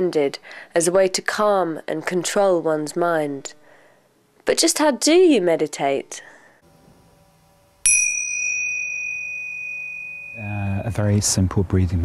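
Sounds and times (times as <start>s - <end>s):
meditation bell ringing: 7.8s - 11.4s.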